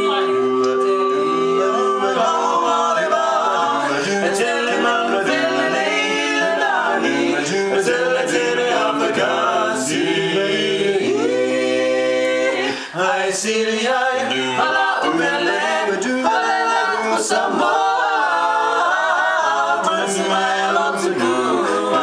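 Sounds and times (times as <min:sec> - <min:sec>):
barbershop quartet singing a cappella: 0:00.0 - 0:22.0.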